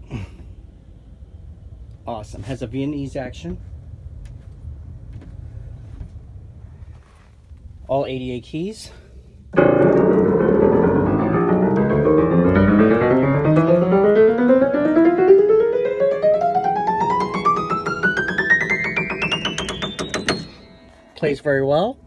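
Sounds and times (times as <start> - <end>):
grand piano run of notes: 9.6 - 21.7.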